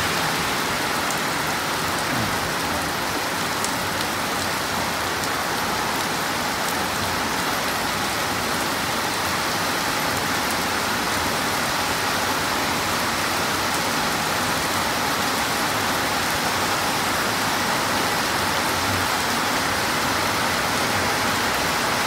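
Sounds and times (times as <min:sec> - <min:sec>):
heavy rain on road: 0:00.0 - 0:22.0.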